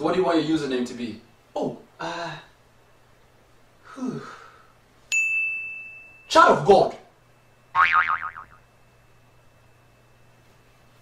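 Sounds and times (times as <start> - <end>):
cartoon boing sound effect: 7.8 - 8.6.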